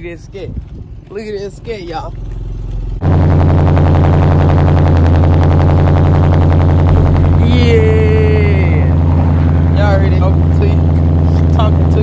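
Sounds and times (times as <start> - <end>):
car exhaust running: 2.0 - 12.0.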